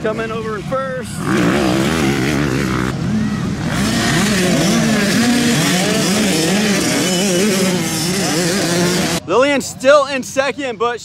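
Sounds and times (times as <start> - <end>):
dirt bike engines revving: 0.0 - 11.0.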